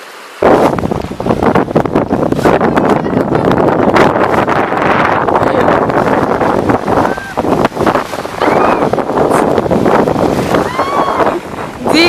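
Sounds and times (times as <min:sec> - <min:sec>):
splashing shallow water: 0:00.0 - 0:12.0
wind noise on microphone: 0:00.4 - 0:12.0.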